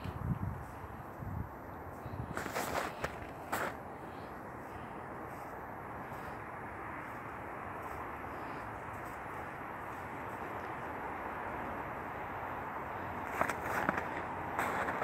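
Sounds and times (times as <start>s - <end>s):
steady background noise: 0.0s - 15.0s
footsteps crunching in snow: 2.2s - 6.4s, 7.0s - 10.9s, 13.1s - 15.0s.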